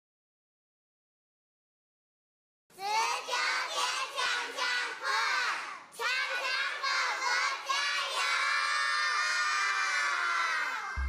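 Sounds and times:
children shouting and cheering: 0:02.8 - 0:11.0.

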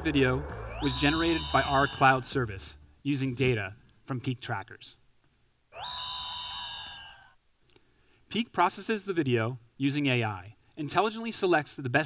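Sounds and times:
synthesized swoop and bright chord: 0:00.0 - 0:04.2.

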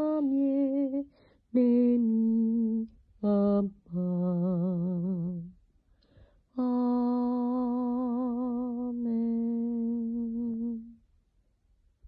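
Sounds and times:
woman singing unaccompanied: 0:00.0 - 0:05.6, 0:06.5 - 0:11.0.

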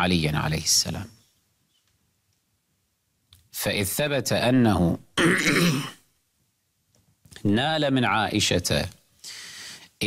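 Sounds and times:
man speaking: 0:03.5 - 0:05.1, 0:07.4 - 0:09.0
man clearing his throat: 0:05.2 - 0:06.0.

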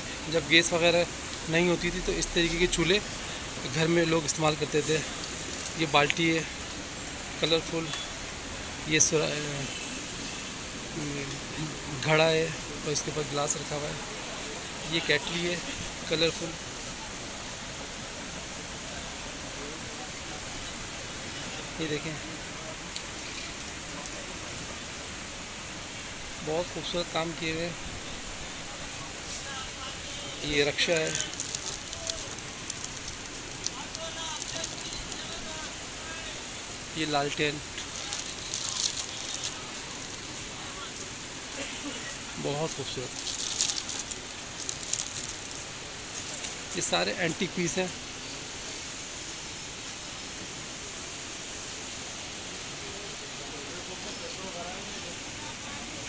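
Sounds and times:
hiss-like shop background noise: 0:00.0 - 0:56.0.

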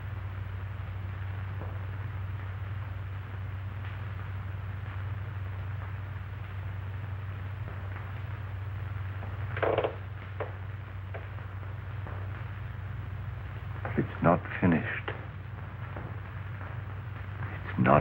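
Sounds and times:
film soundtrack hum and hiss: 0:00.0 - 0:18.0.

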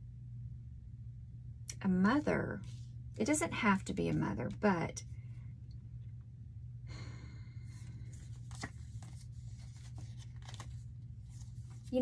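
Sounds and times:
steady low hum: 0:00.0 - 0:12.0
person sighing: 0:06.9 - 0:07.9.

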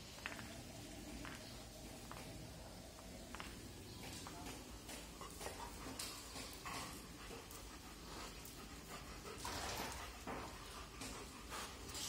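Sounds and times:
dog panting faintly: 0:04.6 - 0:12.0.

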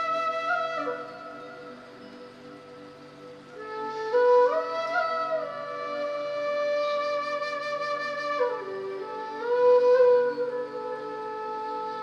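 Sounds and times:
slow flute melody: 0:00.0 - 0:12.0.

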